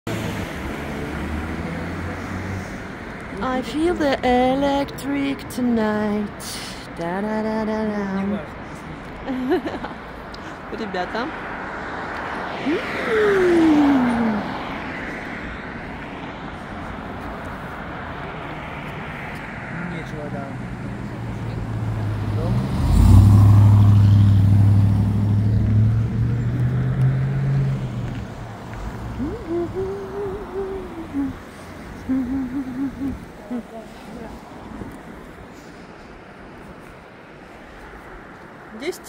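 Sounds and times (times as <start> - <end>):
tyre and road noise: 0.1 - 39.0
van engine rumble: 20.6 - 36.6.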